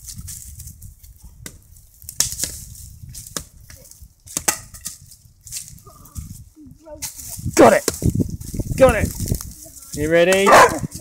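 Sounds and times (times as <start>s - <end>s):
dry twigs and leaves crunching: 0.0s - 11.0s.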